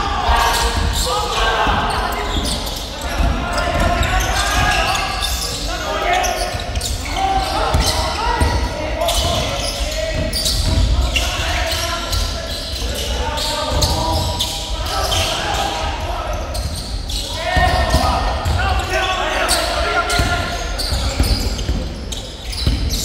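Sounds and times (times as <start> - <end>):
indistinct overlapping voices: 0.0 - 23.0
basketball bouncing on indoor court: 0.5 - 5.5, 6.3 - 12.8, 16.5 - 18.9, 19.5 - 23.0.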